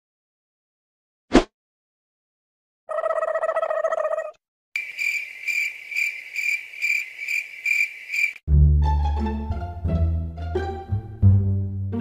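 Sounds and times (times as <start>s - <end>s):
cricket buzzing trill: 4.8s - 8.4s
cricket high chirp: 4.8s - 8.4s.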